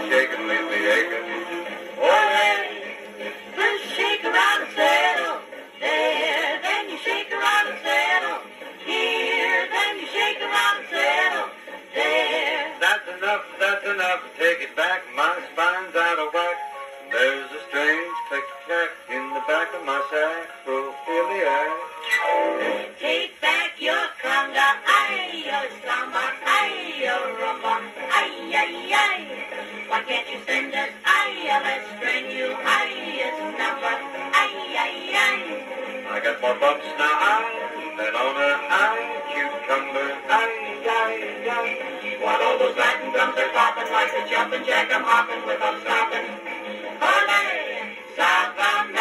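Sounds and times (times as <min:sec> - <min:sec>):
dance band song on gramophone: 0:00.0 - 0:49.0.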